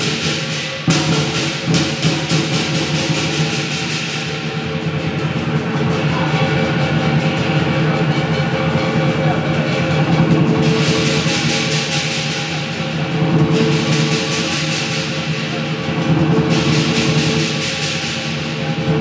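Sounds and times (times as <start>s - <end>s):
clashing cymbals: 0.0s - 19.0s
drum beating rapidly: 0.0s - 19.0s.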